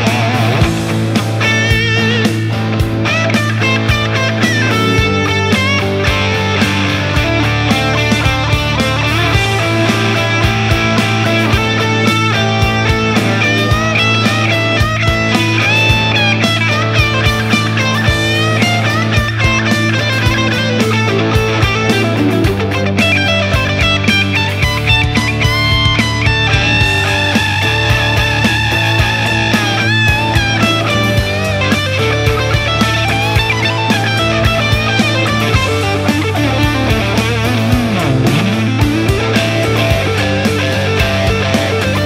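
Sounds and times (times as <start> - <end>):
electric guitar lead runs: 0.0 - 42.0
rock backing track: 0.0 - 42.0.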